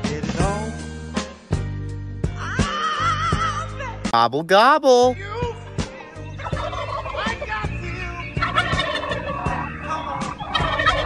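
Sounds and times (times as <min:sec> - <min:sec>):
background music with steady beat: 0:00.0 - 0:11.0
turkey-style gobbling: 0:06.3 - 0:11.0.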